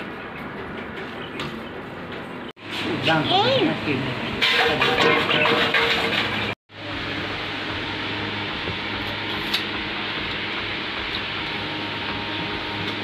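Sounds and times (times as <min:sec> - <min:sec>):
mechanical hum with hiss: 0:00.0 - 0:04.4, 0:06.7 - 0:13.0.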